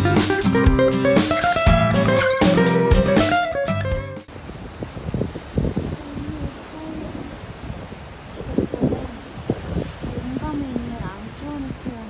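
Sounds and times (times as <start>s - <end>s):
sea waves breaking on rocks: 4.2s - 12.0s
wind buffeting microphone: 4.3s - 12.0s.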